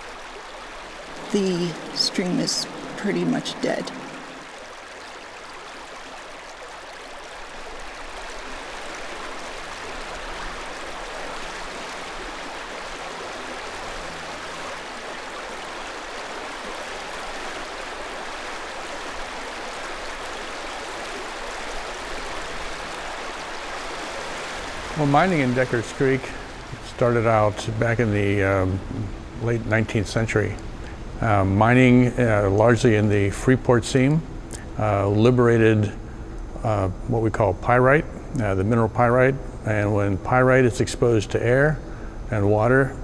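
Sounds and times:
creek flowing over rocks: 0.0 - 29.6.

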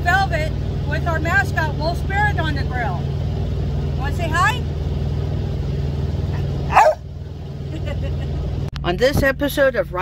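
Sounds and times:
diesel engine idling: 0.0 - 10.0
loud dog bark: 6.7 - 7.1.

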